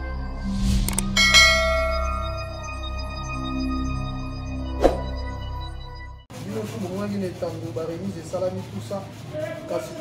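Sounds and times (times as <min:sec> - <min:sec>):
low background music: 0:00.0 - 0:07.4
bell chime: 0:01.1 - 0:04.1.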